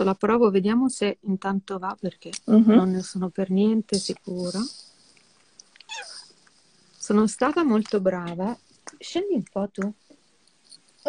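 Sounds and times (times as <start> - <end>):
cat meowing: 5.8 - 6.2.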